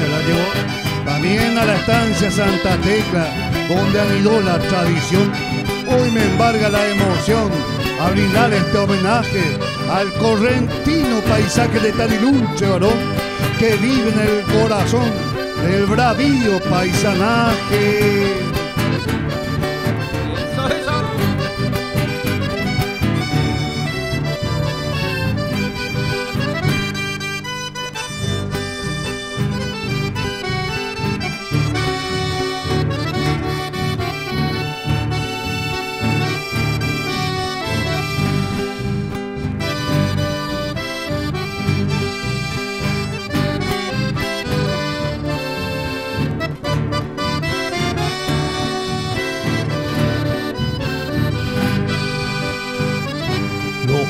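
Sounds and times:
acoustic guitars and bass: 0.0s - 54.0s
button accordion melody: 0.0s - 54.0s.

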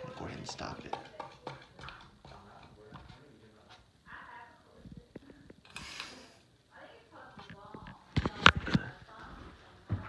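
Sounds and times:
faint conversation: 0.0s - 10.0s.

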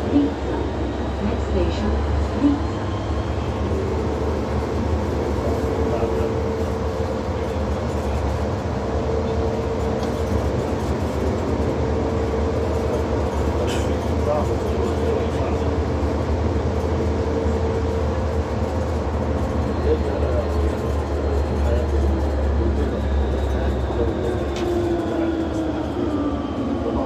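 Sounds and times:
metro train rumble: 0.0s - 27.0s.

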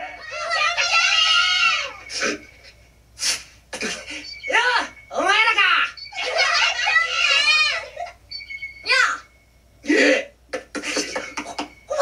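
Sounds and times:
cartoon children shouting: 0.0s - 2.1s, 5.5s - 8.2s.

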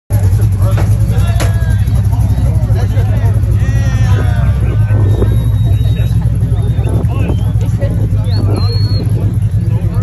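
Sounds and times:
truck engine rumbling: 0.1s - 10.0s
people shouting: 3.6s - 6.1s.

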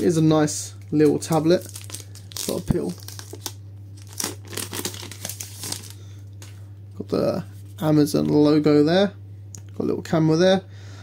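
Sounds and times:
plastic film crinkling and tearing: 1.0s - 6.0s.

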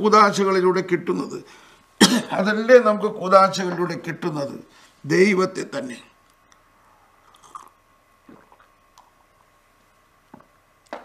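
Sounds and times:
man sipping and gulping: 6.5s - 9.5s.

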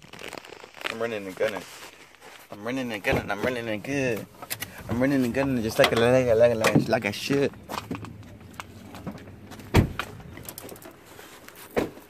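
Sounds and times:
truck door thump: 9.5s - 10.3s.

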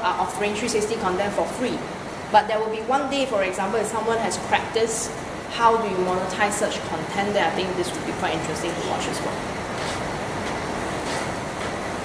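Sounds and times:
room ambience noise: 0.0s - 12.0s.

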